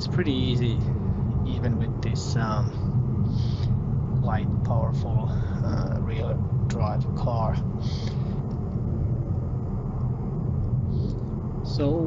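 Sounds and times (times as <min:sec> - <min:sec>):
car engine rumble: 0:00.0 - 0:12.0
tyre road noise: 0:00.0 - 0:12.0.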